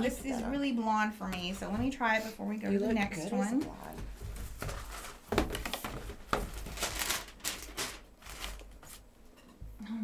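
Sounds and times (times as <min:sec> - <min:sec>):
wig hair rustling and scraping: 0:01.6 - 0:09.1.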